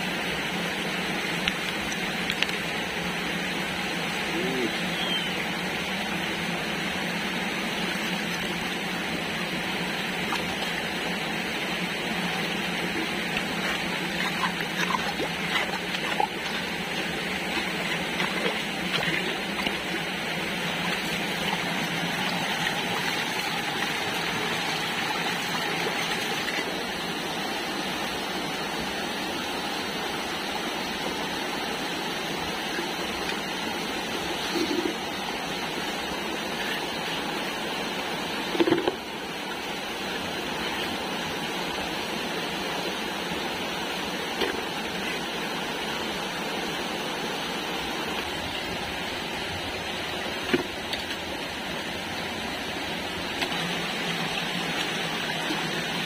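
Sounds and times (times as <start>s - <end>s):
stream water running over rocks: 0.0s - 56.0s.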